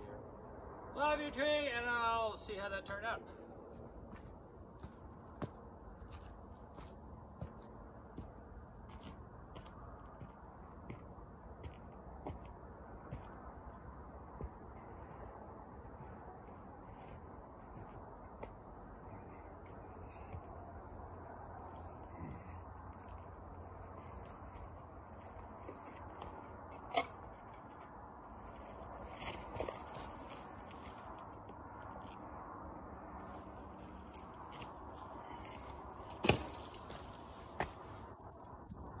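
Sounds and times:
faint outdoor background noise: 0:00.0 - 0:39.0.

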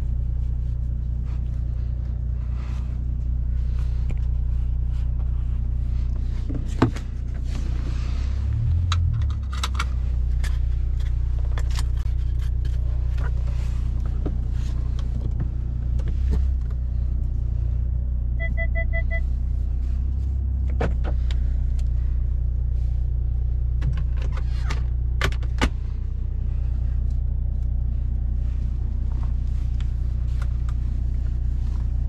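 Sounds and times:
engine and road drone in car: 0:00.0 - 0:32.0
short electronic beeps: 0:18.4 - 0:19.3.

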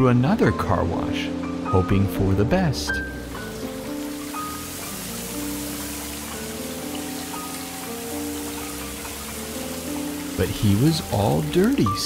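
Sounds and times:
gentle background music: 0:00.0 - 0:12.0
car wash water spraying: 0:03.1 - 0:12.0.

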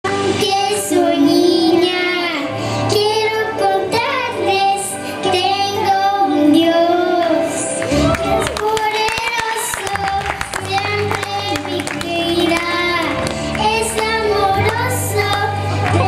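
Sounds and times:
girl singing into a microphone: 0:00.1 - 0:16.0.

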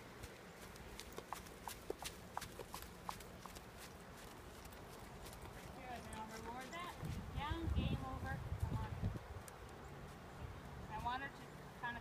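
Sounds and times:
horse hoofbeats on soft dirt: 0:00.0 - 0:09.0.

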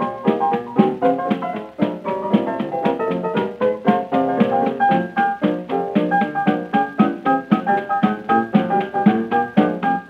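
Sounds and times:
drums: 0:00.0 - 0:10.0
piano: 0:00.0 - 0:10.0.

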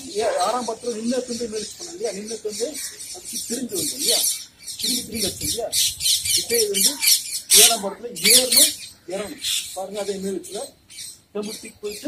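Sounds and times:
person talking: 0:00.0 - 0:10.8.

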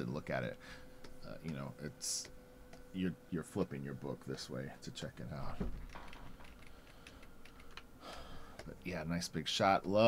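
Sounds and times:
computer keys clicking: 0:05.8 - 0:07.9.

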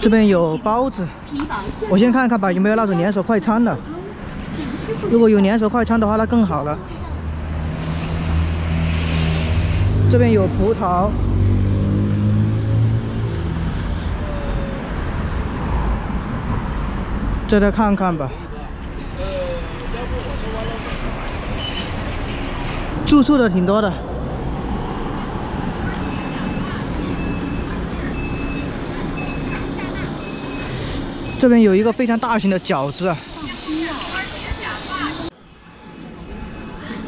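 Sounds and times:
street traffic noise: 0:00.0 - 0:37.0.

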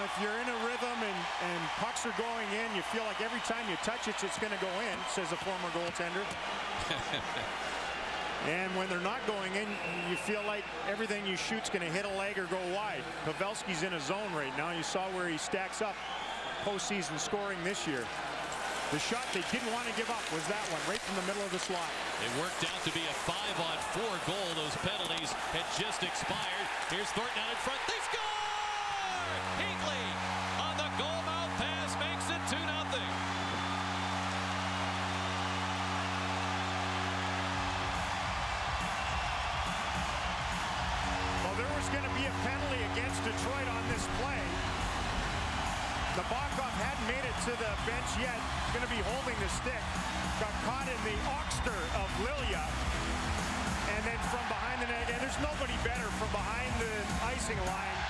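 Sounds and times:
crowd cheering: 0:00.0 - 0:58.0.

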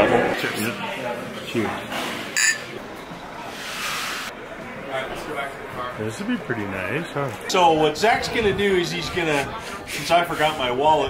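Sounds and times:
faint voices: 0:00.0 - 0:11.0
glasses clinking: 0:02.4 - 0:02.7.

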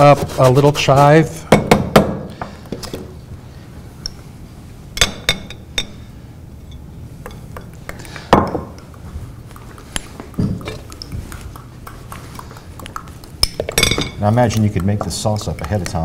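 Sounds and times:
spoon knocking dish: 0:07.2 - 0:16.0
spoon stirring thick sauce: 0:08.8 - 0:16.0
spoon clinking ceramic dish: 0:12.9 - 0:15.7.

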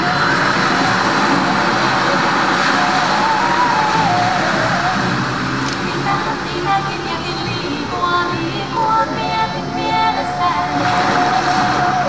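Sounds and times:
steady rushing noise: 0:00.0 - 0:12.0
wavering melody over loudspeakers: 0:00.0 - 0:12.0.

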